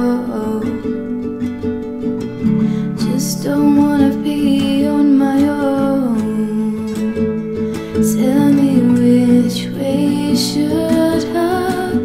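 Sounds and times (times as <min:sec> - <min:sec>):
woman singing: 0:00.0 - 0:01.4, 0:02.4 - 0:12.0
acoustic guitar strumming: 0:00.0 - 0:12.0.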